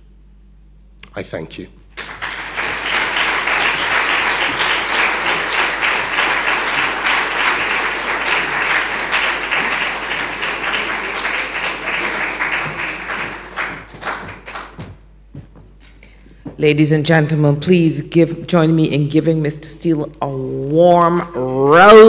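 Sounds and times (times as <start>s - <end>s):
audience applause: 2.0s - 15.0s.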